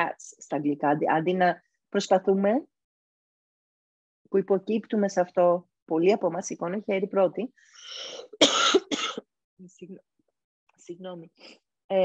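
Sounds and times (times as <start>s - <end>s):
woman coughing: 8.2s - 9.3s.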